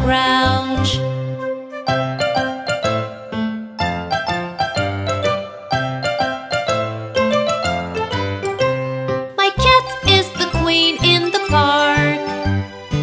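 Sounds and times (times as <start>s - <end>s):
instrumental children's song: 0.0s - 13.0s.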